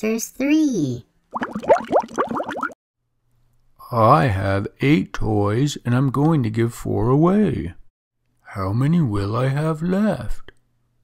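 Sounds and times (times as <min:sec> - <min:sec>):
cartoon rising bloops: 0:01.3 - 0:02.8.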